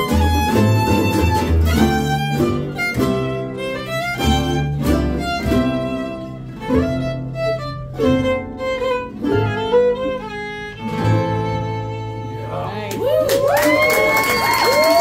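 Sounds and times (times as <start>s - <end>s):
fiddle melody: 0.0s - 12.9s
acoustic guitar: 0.0s - 13.0s
upright bass: 0.0s - 13.3s.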